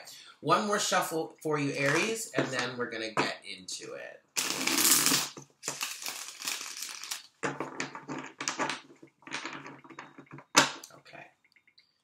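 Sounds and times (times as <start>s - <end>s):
cards being shuffled: 4.4s - 7.3s.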